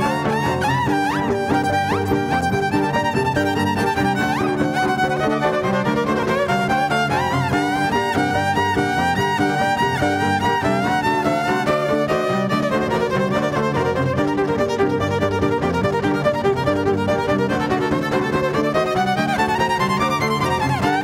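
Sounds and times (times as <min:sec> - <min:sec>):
electric violin melody: 0:00.0 - 0:21.0.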